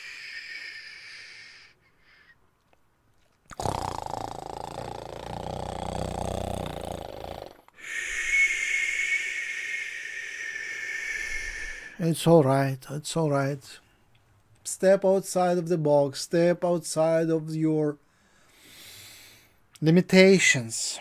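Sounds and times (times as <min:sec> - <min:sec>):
man breathing hiss: 0:00.0 - 0:01.8, 0:04.8 - 0:12.0, 0:18.4 - 0:19.6
rough throaty exhale: 0:03.6 - 0:12.0.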